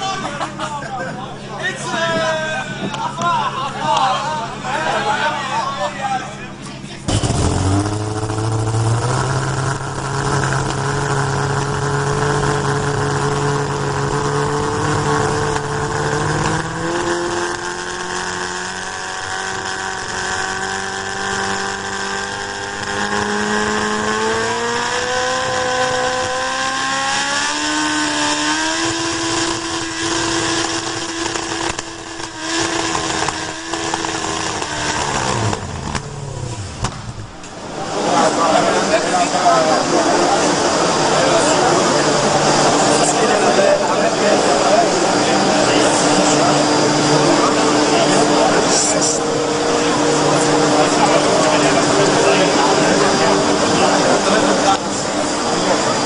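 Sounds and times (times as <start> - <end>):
race car engine running: 0.0 - 56.0.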